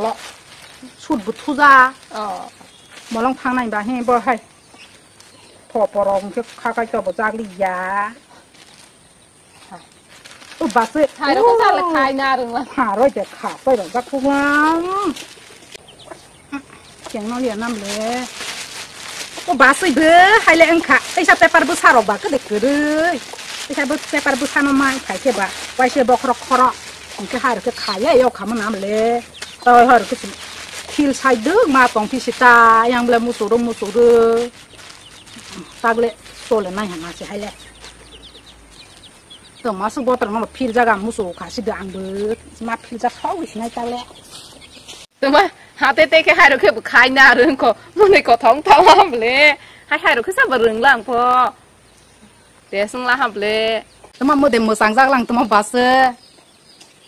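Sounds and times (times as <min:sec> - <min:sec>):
woman speaking: 0:00.0 - 0:00.2, 0:00.8 - 0:04.5, 0:05.7 - 0:08.3, 0:10.6 - 0:15.2, 0:16.5 - 0:18.4, 0:19.4 - 0:34.6, 0:35.4 - 0:37.6, 0:39.6 - 0:44.2, 0:45.2 - 0:51.6, 0:52.7 - 0:56.2
chickens clucking: 0:13.4 - 0:19.5, 0:22.0 - 0:45.1.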